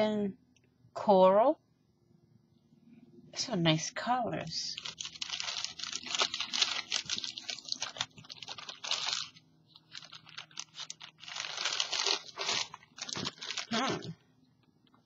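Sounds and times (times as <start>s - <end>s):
plastic bag crinkling: 4.6s - 14.2s.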